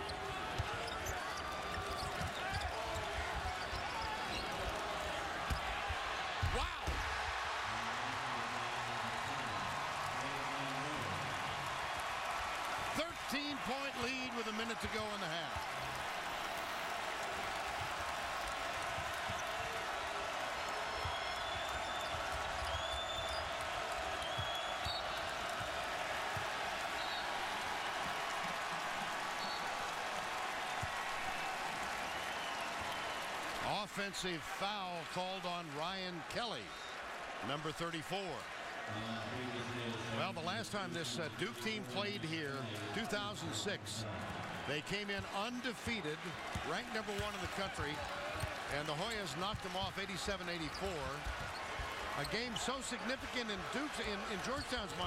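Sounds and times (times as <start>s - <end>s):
arena crowd noise: 0.0s - 55.0s.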